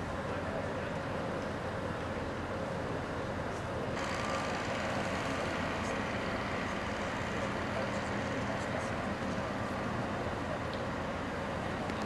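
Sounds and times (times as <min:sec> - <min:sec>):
heavy vehicle engines running: 0:00.0 - 0:12.0.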